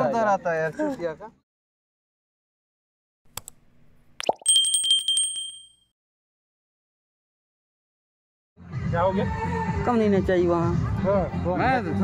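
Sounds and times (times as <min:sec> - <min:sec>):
bell trilling: 0:04.4 - 0:05.9.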